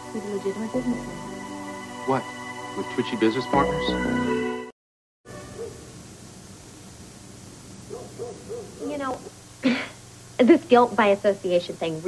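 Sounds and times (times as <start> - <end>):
steady low hum: 5.3 - 12.0.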